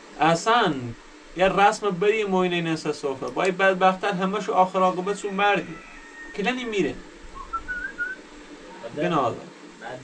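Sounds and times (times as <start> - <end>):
person whistling rising notes: 7.4 - 8.2.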